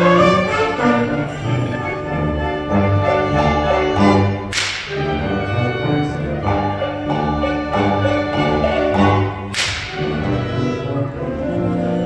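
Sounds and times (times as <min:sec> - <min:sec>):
sharp percussion crack: 0:04.5 - 0:05.2, 0:09.5 - 0:10.3.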